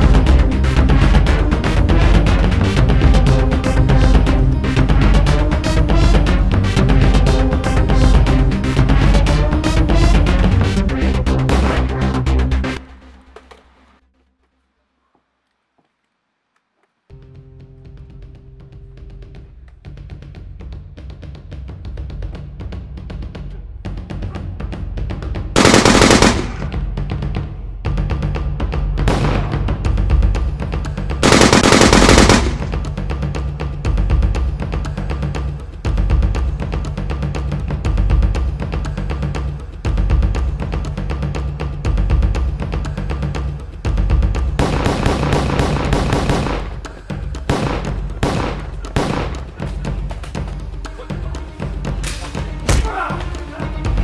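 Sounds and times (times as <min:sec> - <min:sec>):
action music with fast drums: 0:00.0 - 0:13.2, 0:17.2 - 0:54.0
rapid gunfire sound effect: 0:25.6 - 0:26.7, 0:31.2 - 0:32.8, 0:44.6 - 0:46.8, 0:47.5 - 0:49.6
hard thud of a blow: 0:52.0 - 0:53.2
short cry: 0:52.7 - 0:53.6.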